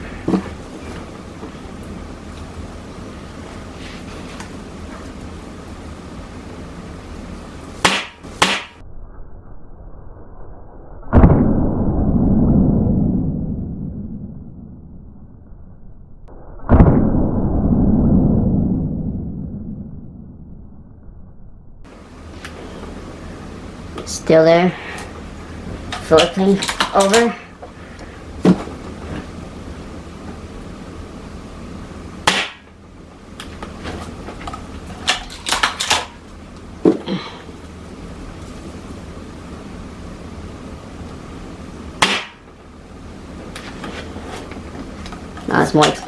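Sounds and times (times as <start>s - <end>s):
air rifle shot cracks: 7.8s - 8.8s, 32.2s - 32.7s, 42.0s - 42.5s
slowed-down deep booms: 8.8s - 21.9s.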